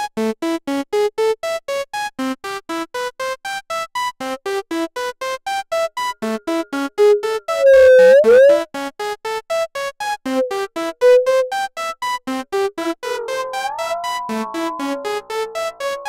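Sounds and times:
synthesizer arpeggio: 6.2 - 8.7, 10.3 - 11.7, 12.6 - 16.0
delay feedback swooping in pitch: 7.0 - 8.6, 10.3 - 11.7, 13.0 - 16.0
flanger-like ringing tone: 7.0 - 8.6, 10.3 - 11.6, 13.0 - 16.0.

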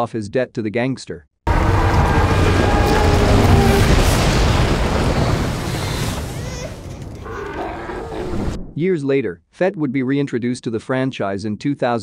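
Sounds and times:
man narrating: 0.0 - 1.2, 8.8 - 12.0
animal-like growling roar: 1.5 - 8.6
low rumble: 1.5 - 8.8.

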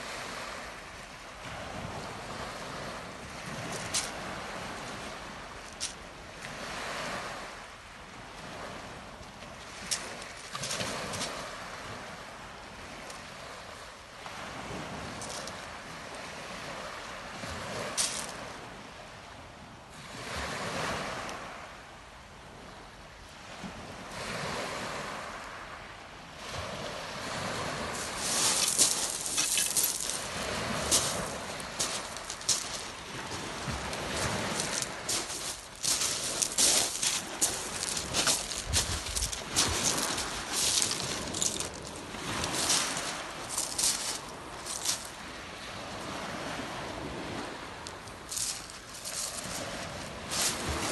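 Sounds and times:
waves washing on shingle: 0.0 - 7.6, 8.4 - 18.8, 26.4 - 50.9
footsteps crunching on pebbles: 3.7 - 4.2, 18.0 - 18.3, 28.0 - 45.1, 48.3 - 50.9
wind on microphone: 37.2 - 43.5.

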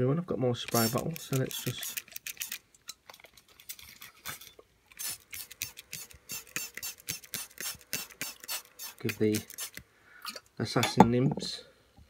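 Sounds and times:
spray bottle squirts: 0.7 - 2.6, 3.8 - 9.8.

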